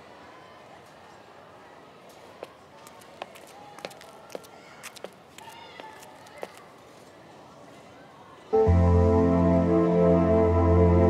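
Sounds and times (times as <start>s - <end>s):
faint murmur of voices: 0.0s - 8.7s.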